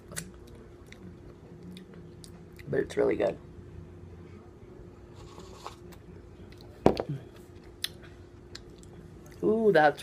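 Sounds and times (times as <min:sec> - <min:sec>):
cup knocking down on surface: 0:06.8 - 0:07.1.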